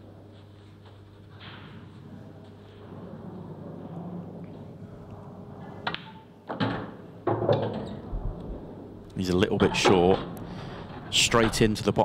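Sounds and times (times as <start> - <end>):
low room hum: 0.0 - 12.0
pool balls colliding: 5.6 - 10.4.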